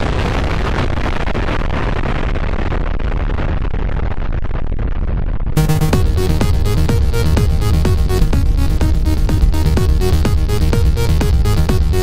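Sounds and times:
electronic dance music: 0:05.6 - 0:12.0.

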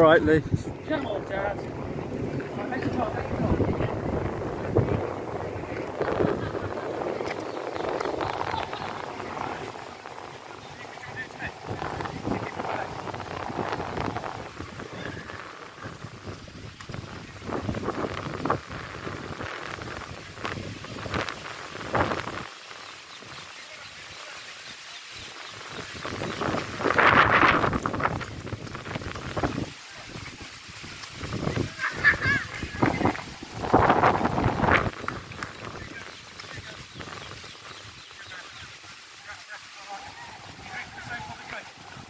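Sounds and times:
voices talking and calling: 0:00.0 - 0:18.2, 0:20.9 - 0:28.8, 0:29.6 - 0:42.0
wind noise on microphone: 0:00.0 - 0:42.0.

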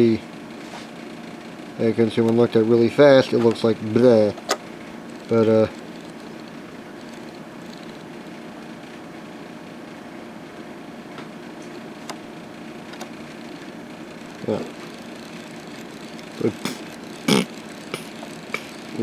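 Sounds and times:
steady low hum: 0:00.0 - 0:19.0.

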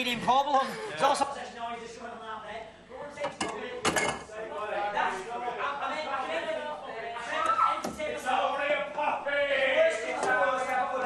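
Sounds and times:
cutlery and crockery clinking: 0:03.2 - 0:04.3.

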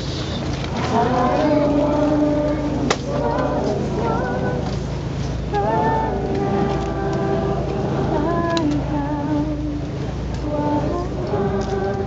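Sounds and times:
crowd singing a gospel hymn: 0:00.0 - 0:12.0
steady low hum: 0:00.0 - 0:12.0.

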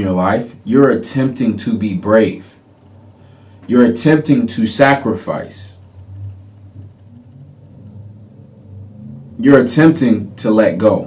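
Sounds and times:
low steady hum: 0:00.0 - 0:11.0
faint wavering tones: 0:05.6 - 0:10.4.

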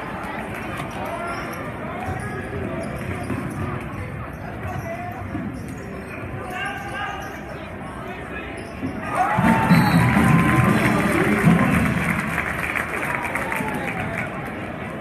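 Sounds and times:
crowd chatter and calls: 0:00.0 - 0:15.0.

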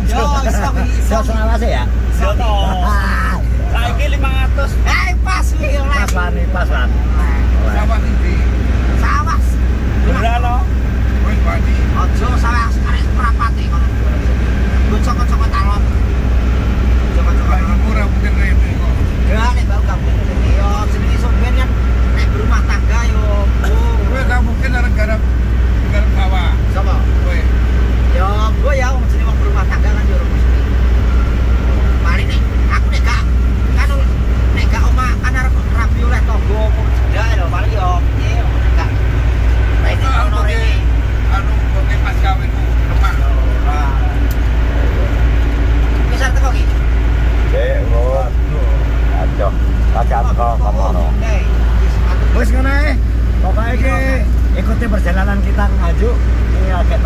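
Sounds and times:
car road and engine rumble: 0:00.0 - 0:57.0
men talking: 0:00.0 - 0:57.0.

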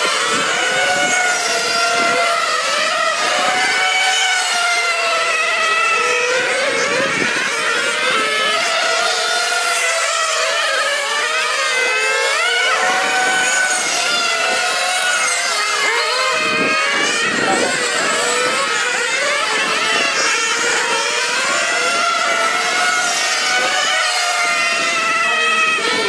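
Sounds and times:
high-pitched rc car engines: 0:00.0 - 0:26.0.

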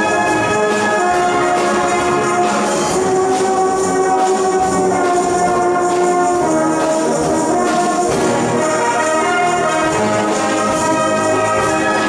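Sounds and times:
brass band playing held chords: 0:00.0 - 0:12.0.

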